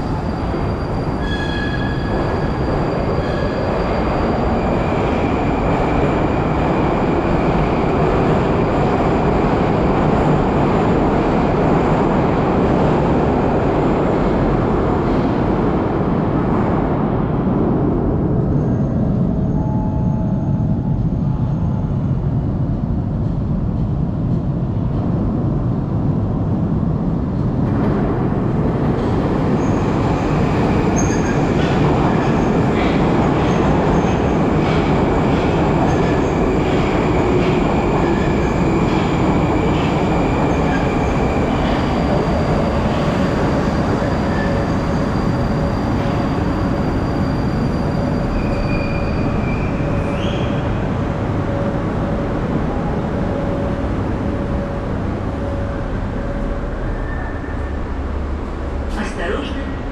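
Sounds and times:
train high whine: 0.0 - 59.9
train rumbling in station: 0.0 - 59.9.

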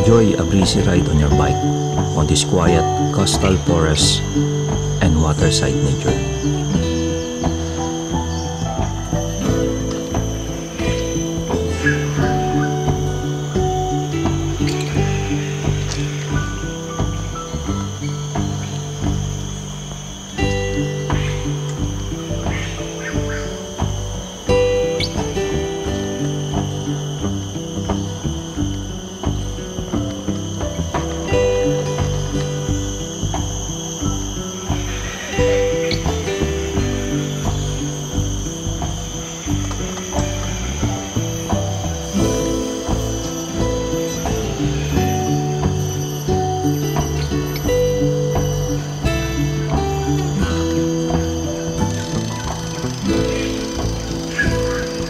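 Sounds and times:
background music with steady beat: 0.0 - 55.0.

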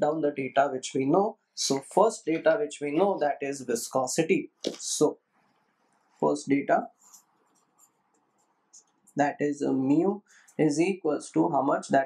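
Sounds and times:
marker pen scratching on whiteboard: 7.0 - 9.2.

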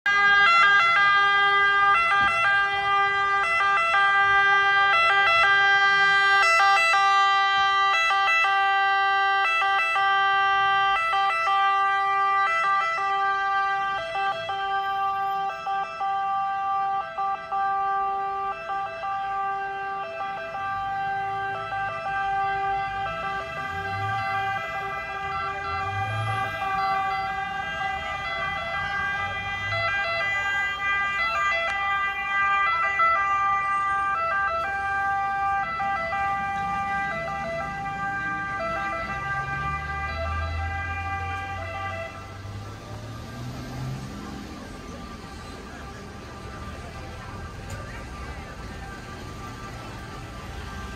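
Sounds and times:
fire engine sirens: 0.0 - 50.9
truck engine rumble: 0.0 - 50.9.

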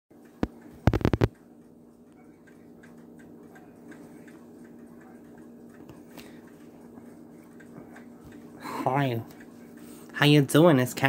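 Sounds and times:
faint steady hum: 0.2 - 11.0.

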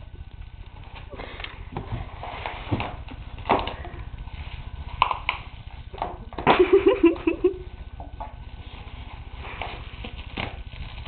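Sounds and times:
bubble wrap crinkling: 0.0 - 11.0.

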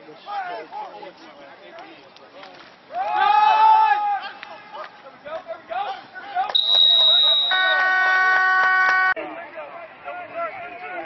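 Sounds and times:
referee's whistle: 6.5 - 9.2.

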